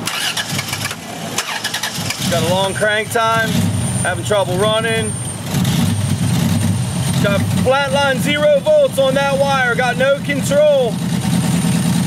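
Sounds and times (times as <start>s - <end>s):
car engine running rough: 0.0s - 12.0s.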